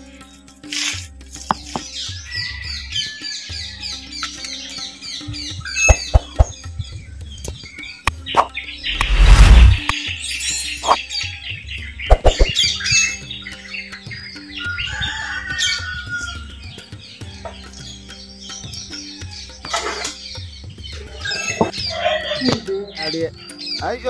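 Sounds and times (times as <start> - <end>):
background music: 0.0 - 24.0
small birds chirping: 1.4 - 24.0.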